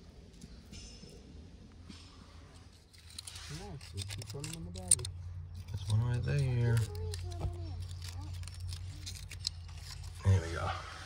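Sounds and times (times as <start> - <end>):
metal pick scratching rock: 2.5 - 10.7.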